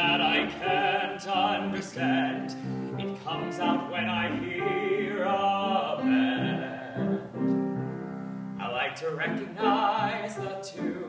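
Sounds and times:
man singing: 0:00.0 - 0:07.4, 0:08.6 - 0:11.0
grand piano chords: 0:00.0 - 0:11.0.

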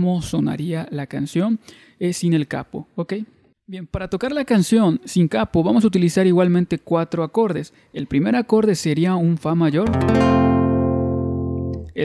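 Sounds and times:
classical guitar chord ringing: 0:09.9 - 0:11.9.

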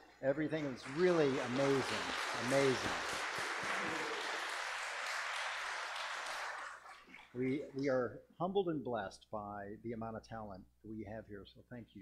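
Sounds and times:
congregation applauding: 0:00.0 - 0:07.6.

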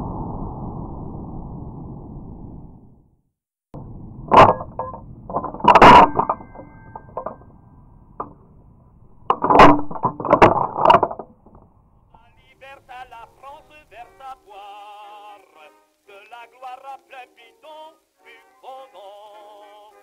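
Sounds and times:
rifle bolt metallic clacks: 0:09.1 - 0:11.3.

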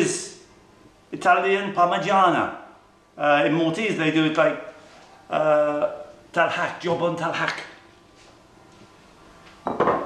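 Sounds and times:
ceramic bowls clattering: 0:09.6 - 0:10.0.

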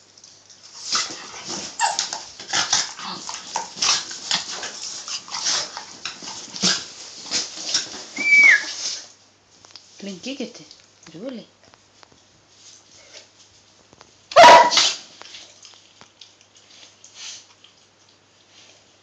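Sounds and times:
dogs snapping and scuffling: 0:00.0 - 0:10.0, 0:10.7 - 0:18.8
dog whining: 0:01.8 - 0:02.2, 0:08.1 - 0:08.9.

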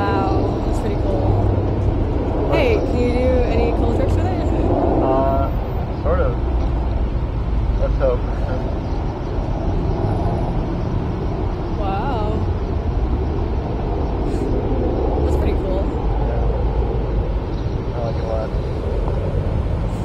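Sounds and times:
steady low rumble: 0:00.0 - 0:20.0
person's voice: 0:02.5 - 0:06.3.

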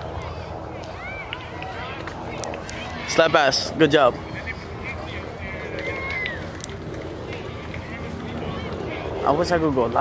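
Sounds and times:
distant voices calling and chatting: 0:00.0 - 0:10.0
steady low rumble: 0:00.0 - 0:10.0.

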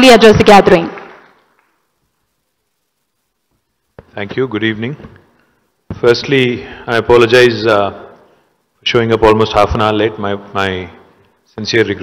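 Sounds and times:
woman's voice: 0:00.0 - 0:01.0.

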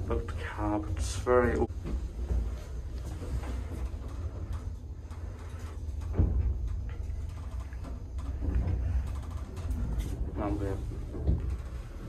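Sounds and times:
lift drive rumbling: 0:00.0 - 0:12.0.

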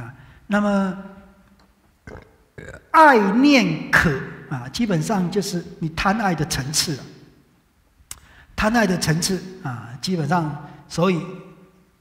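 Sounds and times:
throat noises: 0:02.0 - 0:02.9
man speaking: 0:02.6 - 0:07.1, 0:08.6 - 0:11.5.

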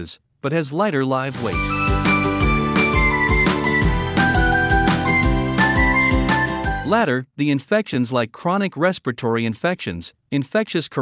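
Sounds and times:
music with steady beat: 0:01.5 - 0:06.9.

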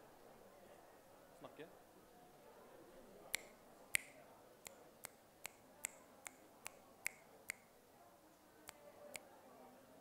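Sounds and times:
sharp short clicks: 0:03.3 - 0:07.7.

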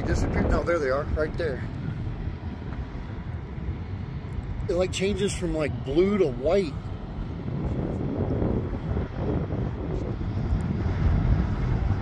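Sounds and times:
low uneven rumble: 0:00.0 - 0:12.0.

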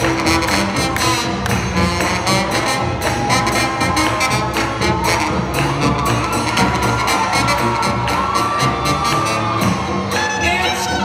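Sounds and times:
swing band with brass playing: 0:00.0 - 0:11.0
crowd cheering and whooping: 0:02.5 - 0:11.0.

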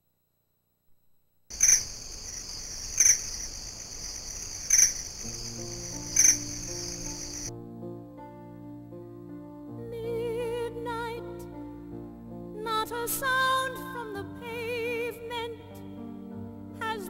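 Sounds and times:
high-pitched insect trill: 0:01.5 - 0:07.5
soft slow music: 0:05.2 - 0:17.0.

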